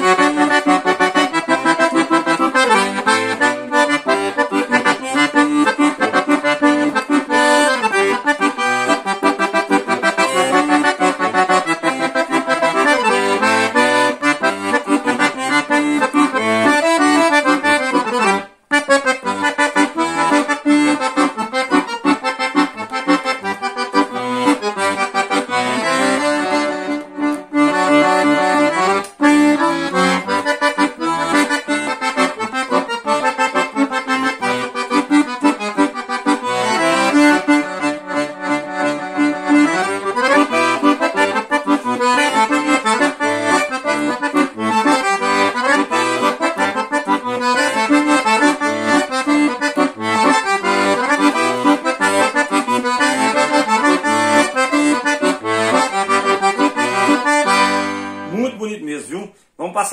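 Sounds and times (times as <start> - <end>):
accordion melody: 0.0 - 59.9.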